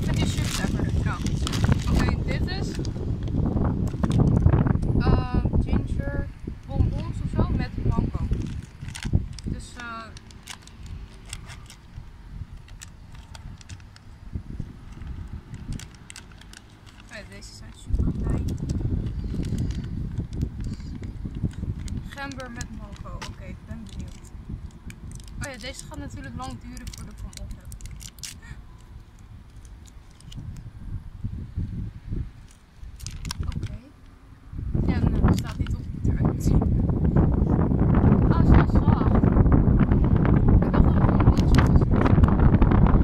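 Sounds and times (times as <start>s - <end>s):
plastic bag crinkling: 0.0s - 4.4s, 8.2s - 14.0s, 14.8s - 30.5s, 32.4s - 33.8s
low rumble: 0.0s - 43.0s.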